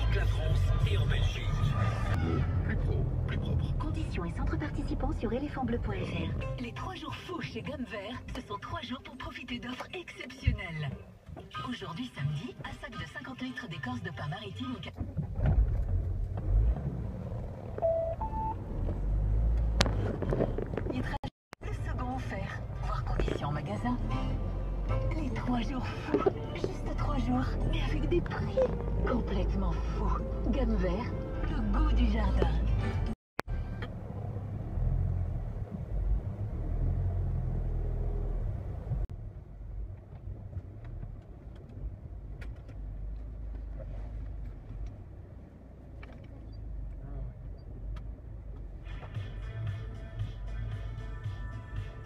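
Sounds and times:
car engine rumble: 0.0 - 52.0
two-note beep: 17.8 - 18.6.

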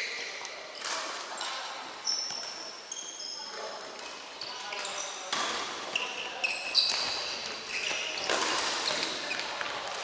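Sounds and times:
shoes squeaking on wooden floor: 2.0 - 3.7, 5.9 - 9.7.

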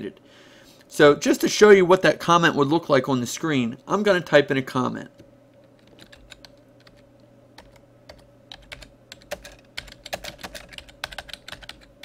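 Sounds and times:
faint steady hum: 0.0 - 12.0
keyboard typing: 5.6 - 7.0, 7.6 - 12.0.

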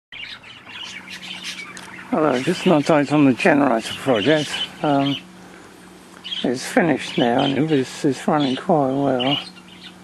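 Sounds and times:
small birds chirping: 0.1 - 10.0
faint low hum: 0.2 - 10.0.

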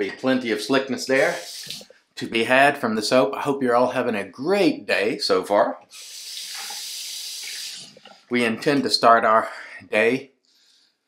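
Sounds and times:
sink tap running: 6.0 - 8.2.

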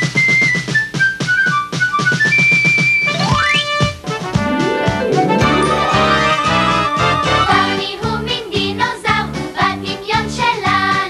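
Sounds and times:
whistle-like melody: 0.0 - 3.9, 4.5 - 7.6.

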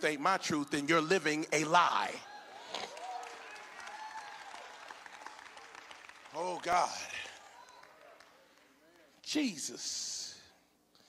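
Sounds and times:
congregation applauding: 2.2 - 9.5.

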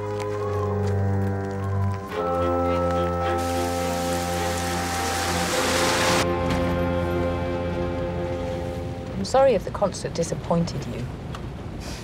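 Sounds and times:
dramatic orchestral chords: 0.9 - 9.6.

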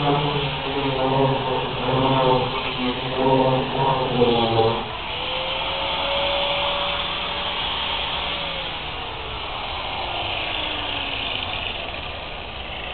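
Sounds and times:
angle grinder whining: 0.0 - 12.9.

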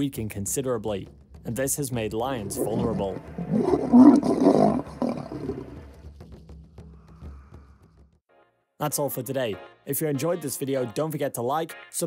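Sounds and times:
lion roaring: 2.3 - 5.9.

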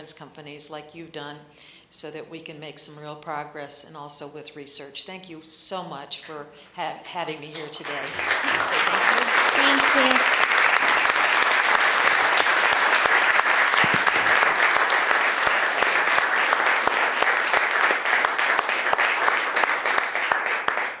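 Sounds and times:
audience applauding: 7.6 - 21.0.

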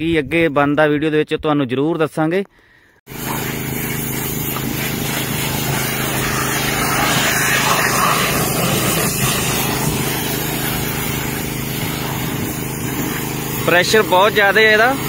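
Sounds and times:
pressure washer motor humming: 3.1 - 15.0
water jet hissing against wood: 3.1 - 15.0.

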